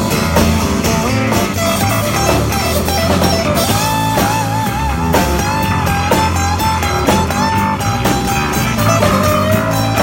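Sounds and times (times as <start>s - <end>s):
acoustic guitars strumming: 0.0s - 10.0s
melody of bending held notes: 0.0s - 10.0s.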